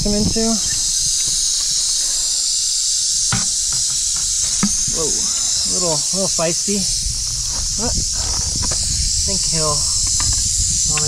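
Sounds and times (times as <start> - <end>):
rattlesnake rattling its tail: 0.0 - 11.0
sharp knocks: 3.3 - 5.2.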